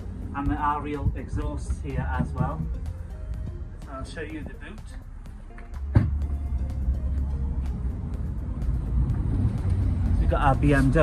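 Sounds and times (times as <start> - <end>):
faint background music: 0.0 - 11.0
low rumble: 0.0 - 11.0.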